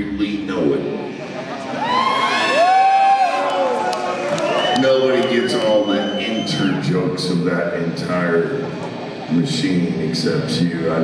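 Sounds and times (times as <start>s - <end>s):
crowd cheering and whooping: 1.4s - 6.4s.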